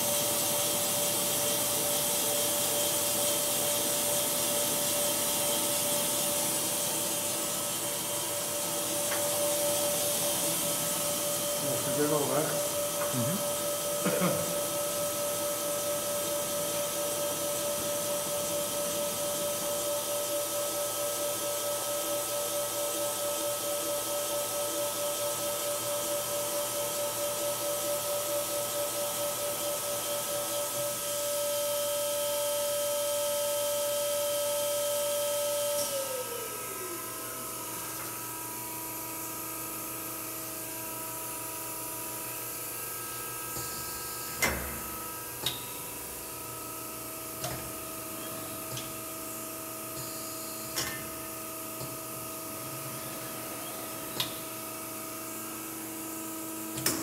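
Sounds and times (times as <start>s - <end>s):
low machine hum: 0.0s - 20.8s, 36.0s - 57.0s
grinding spindle whine: 48.0s - 56.8s.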